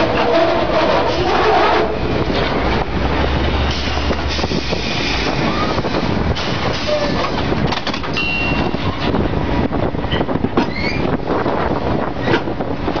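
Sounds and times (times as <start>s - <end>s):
heavy machinery running: 0.0s - 13.0s.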